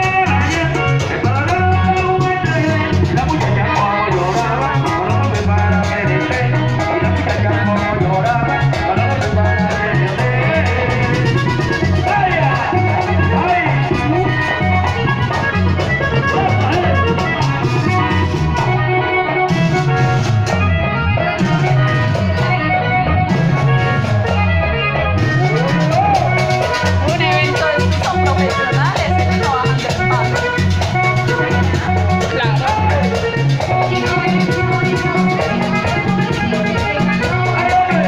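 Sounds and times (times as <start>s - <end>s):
dance music through a loudspeaker: 27.0s - 30.6s, 31.4s - 33.3s.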